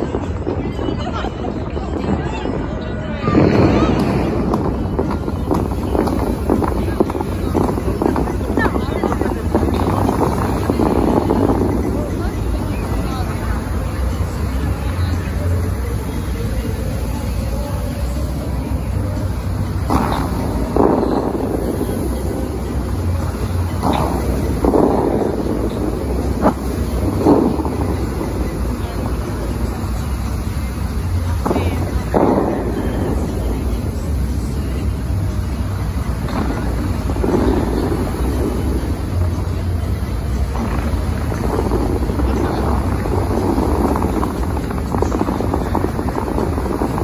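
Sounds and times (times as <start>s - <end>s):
fountain water jets bursting: 0.0s - 47.0s
wind rumble on microphone: 0.0s - 47.0s
sharp crack: 3.3s - 18.6s, 19.2s - 47.0s.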